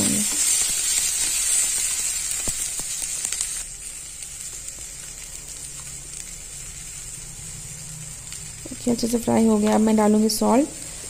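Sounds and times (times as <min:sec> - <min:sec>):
vegetables sizzling in hot oil: 0:00.0 - 0:11.0.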